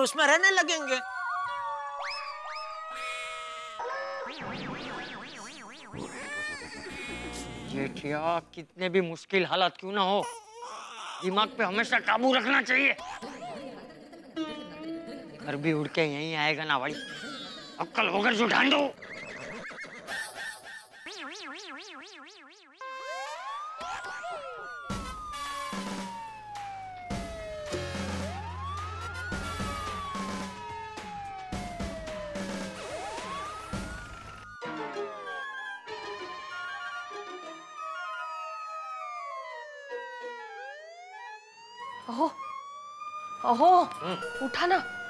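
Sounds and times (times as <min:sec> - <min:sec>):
police siren wailing: 0:00.0 - 0:05.3, 0:15.8 - 0:18.9, 0:21.1 - 0:45.0.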